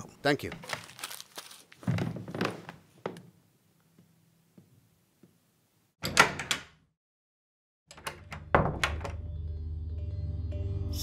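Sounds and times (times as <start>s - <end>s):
door opening clicks and thuds: 6.0s - 6.8s, 7.9s - 9.2s
low background music: 8.8s - 11.0s.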